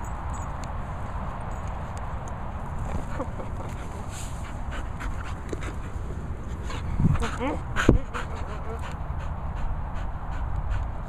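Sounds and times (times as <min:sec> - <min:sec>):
dog panting: 0:02.9 - 0:11.0.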